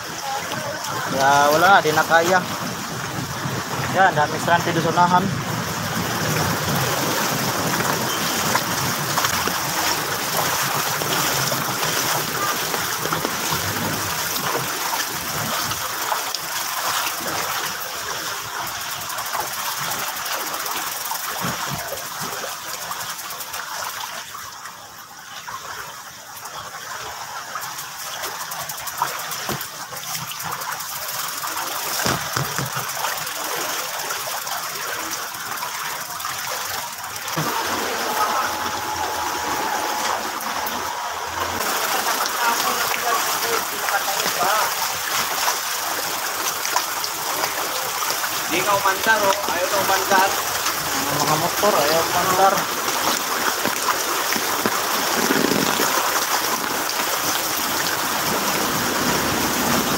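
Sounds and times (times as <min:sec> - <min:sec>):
floodwater rushing and splashing: 0:00.0 - 0:59.9.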